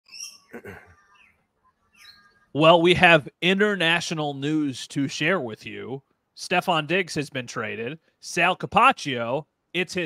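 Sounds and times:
faint high bird chirps: 0.0 - 2.6.

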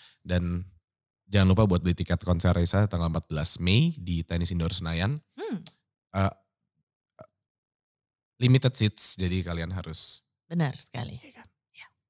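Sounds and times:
person saying uh: 0.3 - 0.6, 1.4 - 6.3, 8.4 - 10.2.

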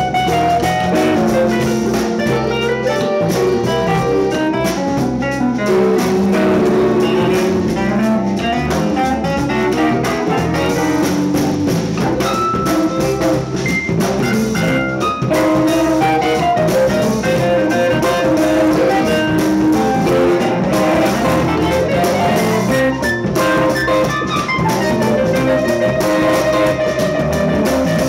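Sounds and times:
drum kit: 0.0 - 28.0
electric guitar: 0.0 - 28.0
electric violin: 0.0 - 28.0
keyboards: 0.0 - 28.0.

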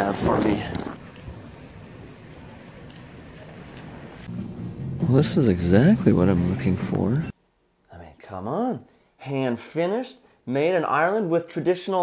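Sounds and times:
low rumbling street noise: 0.0 - 7.4.

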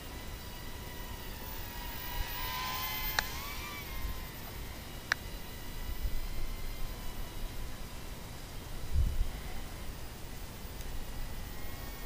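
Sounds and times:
toy quadcopter motors whining: 0.0 - 12.0.

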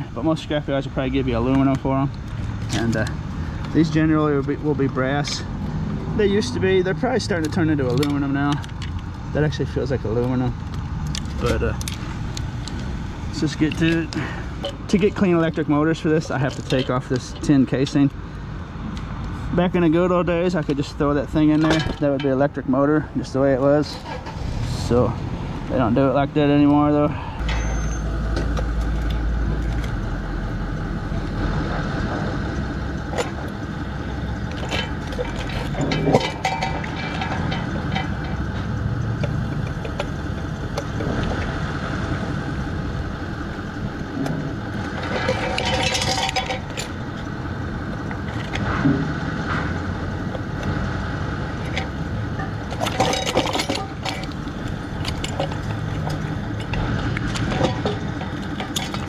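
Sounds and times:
scrap-yard background noise: 0.0 - 59.0.

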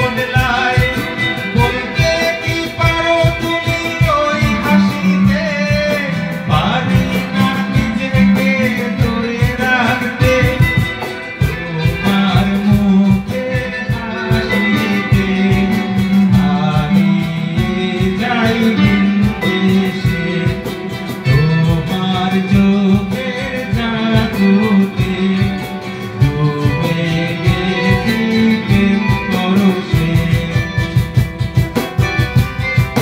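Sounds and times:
man singing: 0.0 - 31.6
electric guitar: 0.0 - 33.0
strummed acoustic guitar: 0.0 - 33.0.

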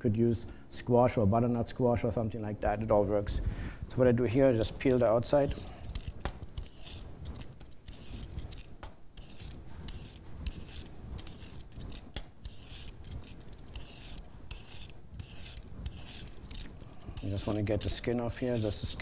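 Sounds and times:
peeler scraping cucumber skin: 4.9 - 19.0.

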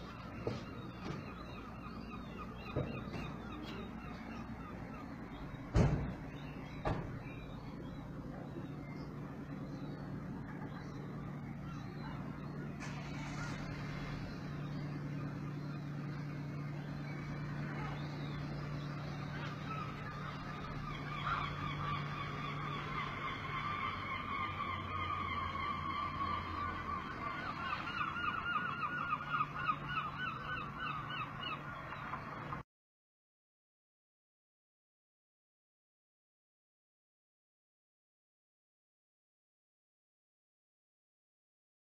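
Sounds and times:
birds calling: 0.0 - 32.6
low hum: 0.0 - 32.6.

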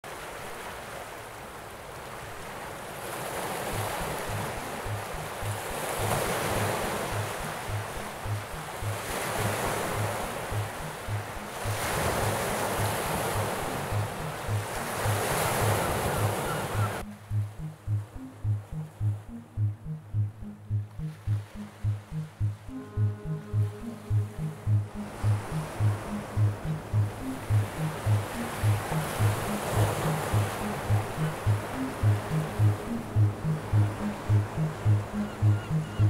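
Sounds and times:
sea waves washing in: 0.0 - 36.0
background music with low beat: 3.8 - 15.8, 16.8 - 36.0.

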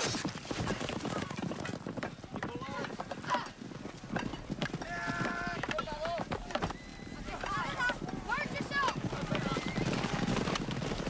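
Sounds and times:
horses galloping hoofbeats: 0.0 - 11.0.

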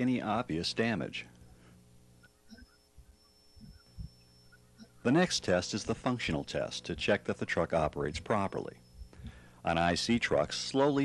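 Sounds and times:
faint low hum: 0.0 - 11.0
high-pitched whine: 2.2 - 11.0.

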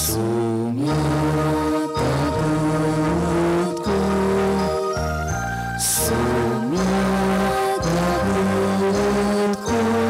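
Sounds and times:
keyboard accompaniment: 0.0 - 10.0
voices singing held notes: 0.0 - 10.0.

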